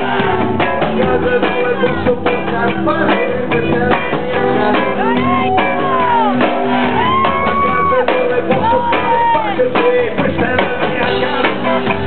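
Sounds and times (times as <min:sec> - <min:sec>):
live band music: 0:00.0 - 0:12.0
man singing: 0:00.0 - 0:12.0.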